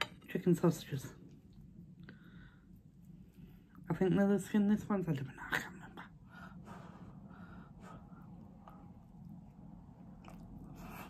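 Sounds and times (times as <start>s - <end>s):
faint breathing: 2.0s - 3.8s, 6.1s - 9.0s.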